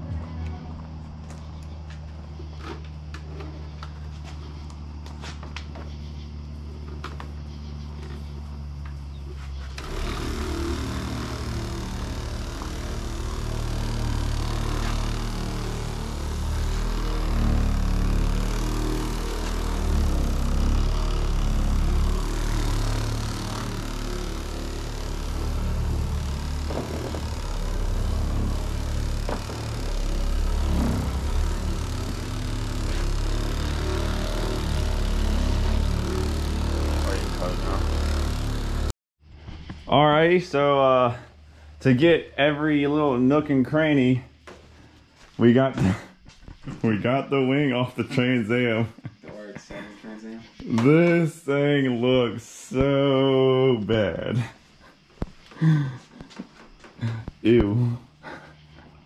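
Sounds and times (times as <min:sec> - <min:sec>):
car polisher running: 0:09.4 - 0:38.9.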